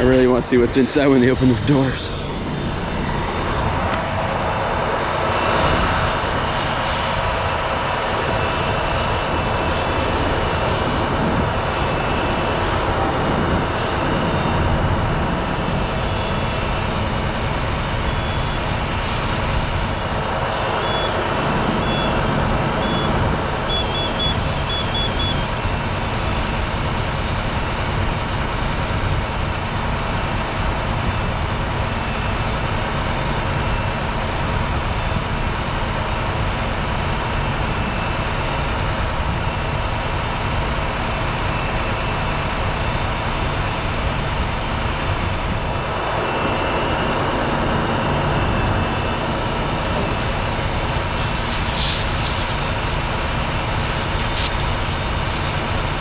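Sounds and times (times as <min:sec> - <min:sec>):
large vehicle engine droning: 0:00.0 - 0:56.0.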